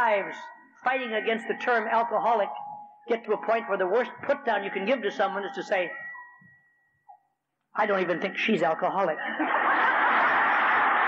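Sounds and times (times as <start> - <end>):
audience laughing: 9.1 - 11.0
audience applauding: 9.5 - 11.0.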